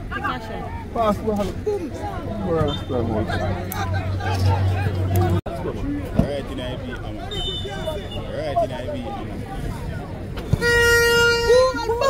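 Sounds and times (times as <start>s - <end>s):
horn blast: 10.5s - 11.8s.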